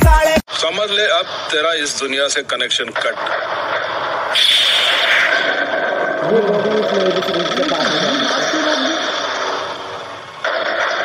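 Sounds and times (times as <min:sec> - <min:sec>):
man singing: 0:00.0 - 0:00.5.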